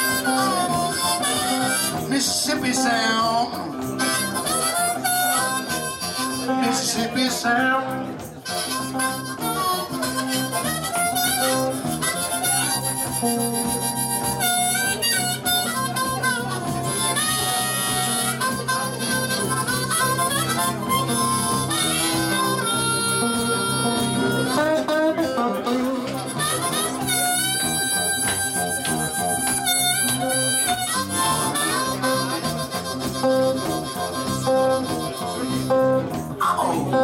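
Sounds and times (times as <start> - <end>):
person singing: 0.0 - 9.0, 21.8 - 27.8
blues electric guitar: 0.0 - 37.0.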